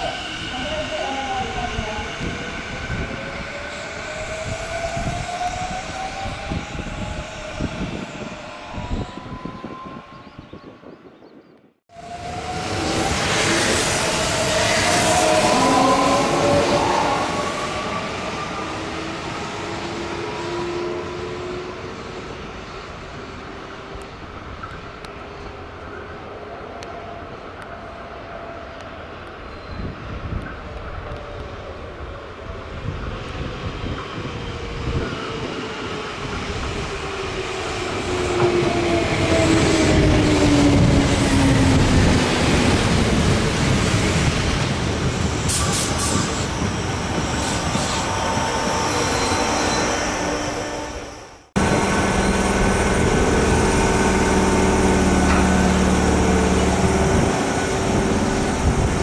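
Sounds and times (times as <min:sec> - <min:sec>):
wheel and rail noise: 0:36.6 - 0:59.0.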